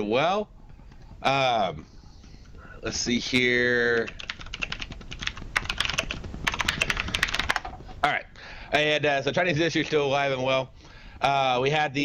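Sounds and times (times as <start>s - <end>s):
keyboard typing: 1.8s - 8.0s.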